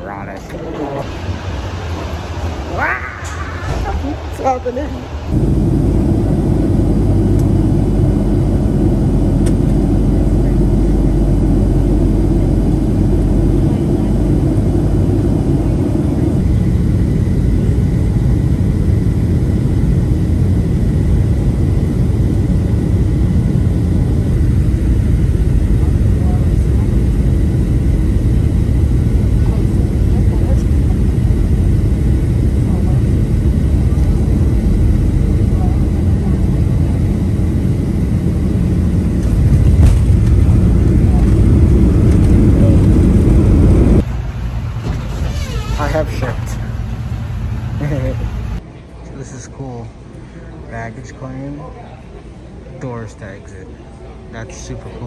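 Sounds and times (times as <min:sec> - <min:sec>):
jet engine rumble in cabin: 0:00.0 - 0:48.6.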